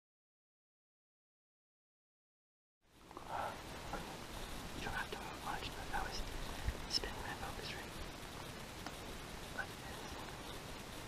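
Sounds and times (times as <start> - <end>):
man whispering: 3.2 - 4.1, 4.7 - 8.0, 9.5 - 10.4.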